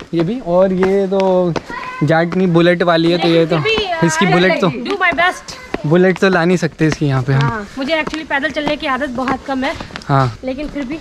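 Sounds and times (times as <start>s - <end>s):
person speaking: 0.0s - 9.4s.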